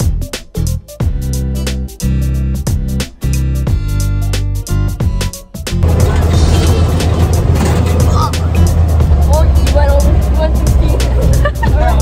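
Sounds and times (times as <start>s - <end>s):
background music with a beat: 0.0s - 12.0s
engine rumble: 5.8s - 12.0s
voices and laughter: 10.4s - 12.0s.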